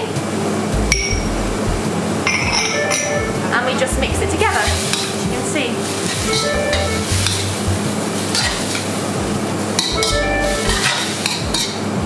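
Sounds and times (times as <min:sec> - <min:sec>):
food frying in a wok: 0:04.4 - 0:12.0.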